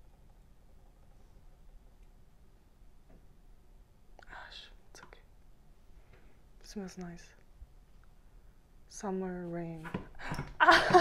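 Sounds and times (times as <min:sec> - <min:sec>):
woman whispering: 0:04.2 - 0:05.3, 0:06.6 - 0:07.4.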